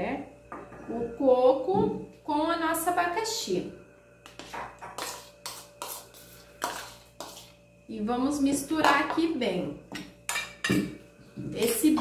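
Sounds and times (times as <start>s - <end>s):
spoon scraping a bowl: 4.2s - 7.6s.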